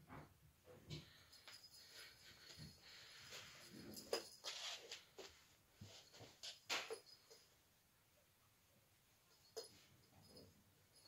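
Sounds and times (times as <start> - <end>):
tinsel toy rustling and scraping: 1.2 - 7.4.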